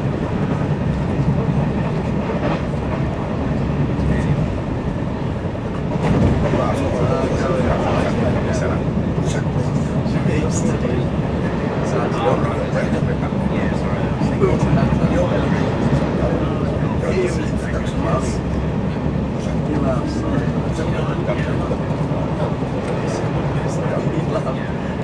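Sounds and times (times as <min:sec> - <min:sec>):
train wheels rumbling on track: 0:00.0 - 0:25.0
indistinct voices: 0:06.1 - 0:25.0.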